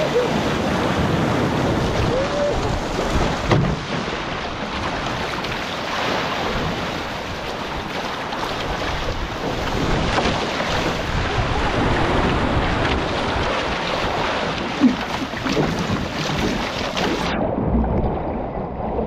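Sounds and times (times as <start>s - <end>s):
wind buffeting microphone: 0.0s - 5.4s, 8.6s - 19.0s
water rushing along a hull: 0.0s - 19.0s.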